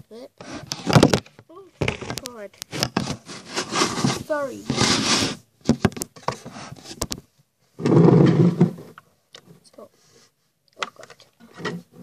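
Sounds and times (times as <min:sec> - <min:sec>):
rough rubbing rustle: 0:01.8 - 0:05.5.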